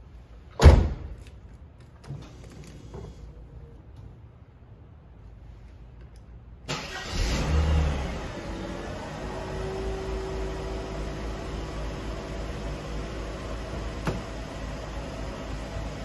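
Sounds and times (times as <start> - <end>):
car engine starting and idling: 6.6 - 16.0.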